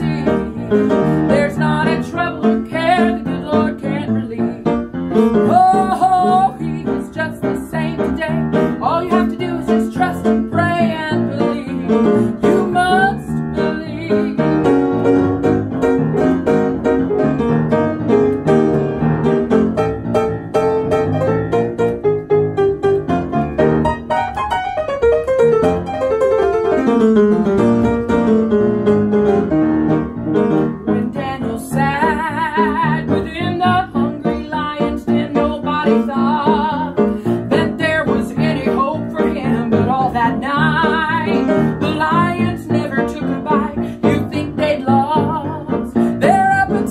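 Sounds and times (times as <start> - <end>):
piano playing chords and melody: 0.0 - 46.9.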